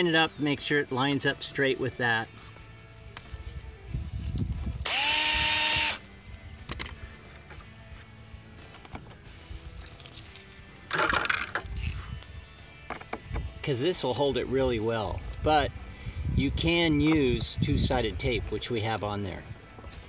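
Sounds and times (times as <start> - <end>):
power drill drilling: 4.8 - 6.0.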